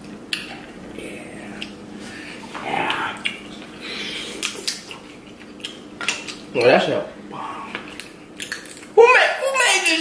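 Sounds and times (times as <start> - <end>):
crab shell cracking: 7.7 - 9.0.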